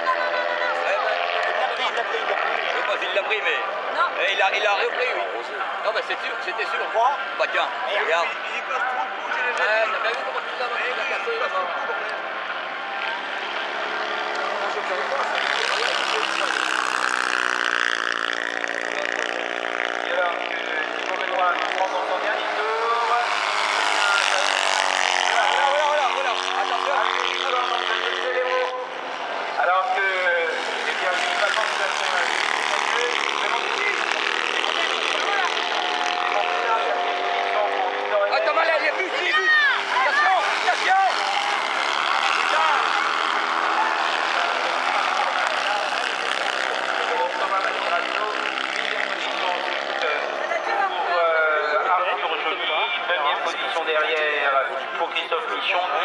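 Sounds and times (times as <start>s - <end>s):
racing buggy engines revving: 0.0s - 56.0s.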